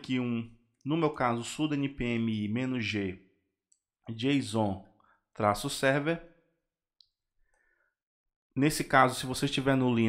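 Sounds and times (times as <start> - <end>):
man speaking: 0.0 - 3.2, 4.0 - 6.3, 8.6 - 10.0.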